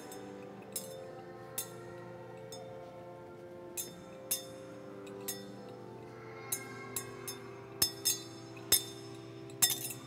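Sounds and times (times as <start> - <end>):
sharp metallic clinks: 3.8 - 5.8, 6.4 - 10.0.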